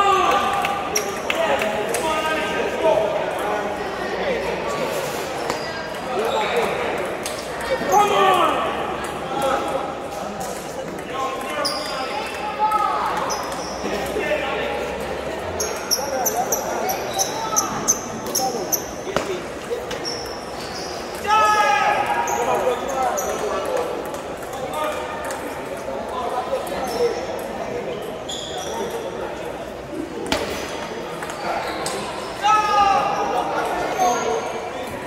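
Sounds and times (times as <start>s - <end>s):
murmur of voices in hall: 0.0s - 35.0s
short high squeaks: 28.3s - 29.0s.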